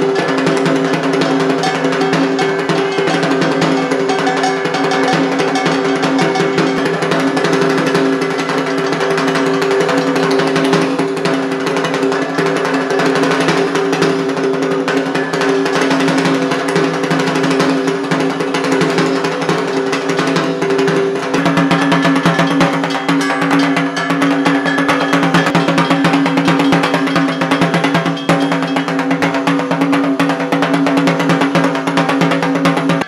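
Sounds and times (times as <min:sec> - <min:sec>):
barrel drum beaten fast: 0:00.0 - 0:33.0
ringing tones: 0:00.0 - 0:33.0.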